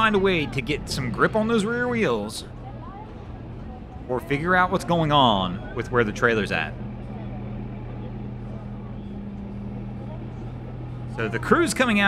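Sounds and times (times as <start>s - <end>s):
outdoor background noise: 0.0s - 12.0s
vehicle engine idling: 0.0s - 12.0s.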